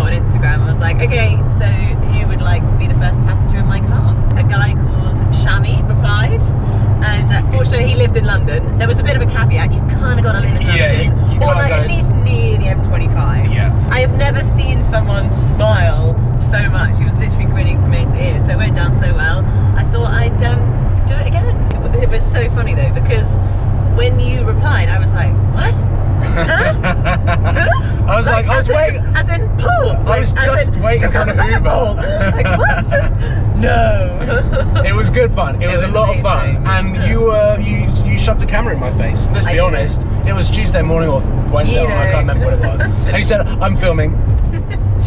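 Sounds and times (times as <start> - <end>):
people talking: 0.0 - 23.4, 24.0 - 45.0
car engine and tyres droning: 0.0 - 45.0
people laughing: 26.2 - 28.9, 30.1 - 36.3, 42.1 - 43.8.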